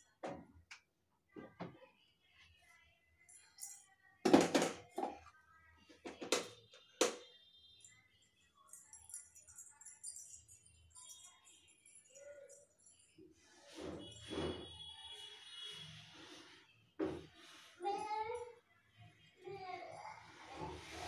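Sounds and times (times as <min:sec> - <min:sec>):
faint background music: 0:00.0 - 0:21.0.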